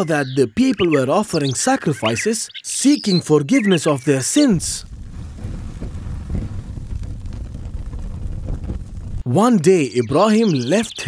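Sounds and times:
low continuous rumble: 0:04.6 - 0:09.2.

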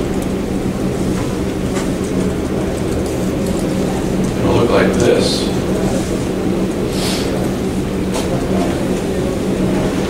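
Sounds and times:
constant low hum: 0:00.0 - 0:10.0.

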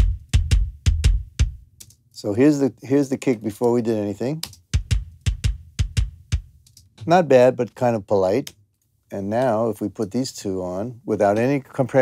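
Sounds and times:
kick drum hits: 0:00.0 - 0:01.7, 0:04.6 - 0:07.1.

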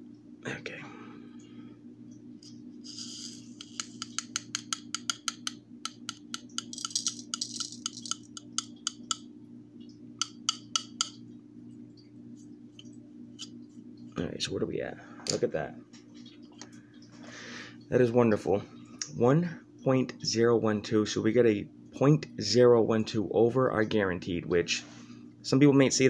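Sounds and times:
low steady hum: 0:00.0 - 0:26.0
metal pieces tinkling on a tray: 0:06.6 - 0:08.3.

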